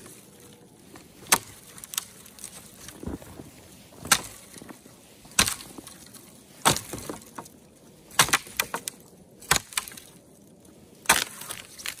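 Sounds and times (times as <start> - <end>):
hatchet chopping dry wood: 4.0 - 4.4, 5.3 - 5.7, 6.6 - 7.3, 8.2 - 8.9, 9.5 - 10.0, 11.1 - 12.0.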